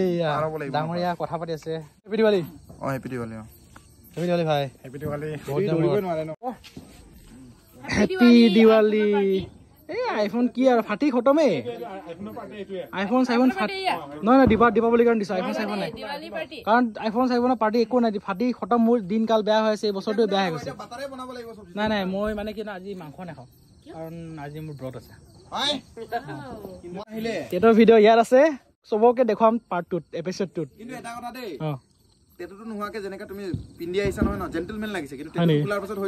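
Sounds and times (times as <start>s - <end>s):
crickets chirping: 0.0s - 36.0s
people talking: 4.2s - 31.8s, 32.4s - 36.0s
people calling out greetings: 7.7s - 10.5s.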